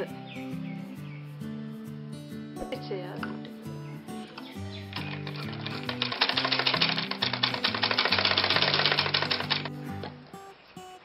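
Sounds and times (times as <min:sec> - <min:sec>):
background music: 0:00.0 - 0:10.6
sewing machine stitching: 0:05.2 - 0:09.7.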